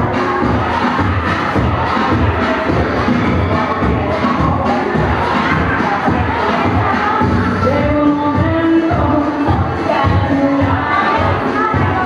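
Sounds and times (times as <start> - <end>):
loud dance music: 0.0 - 12.0
people shouting and cheering: 0.0 - 12.0.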